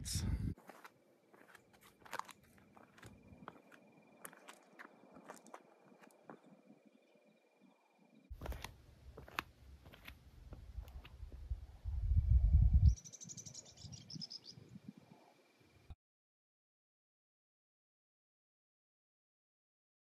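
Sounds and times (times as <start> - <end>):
wind rumble on microphone: 0.0 - 0.6, 10.5 - 15.3
bird chirping: 2.6 - 8.4, 12.7 - 15.9
light clicks and scuffs: 8.4 - 11.2.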